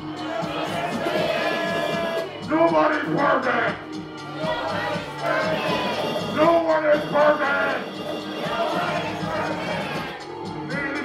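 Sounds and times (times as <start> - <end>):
live electronic music: 0.0 - 11.0.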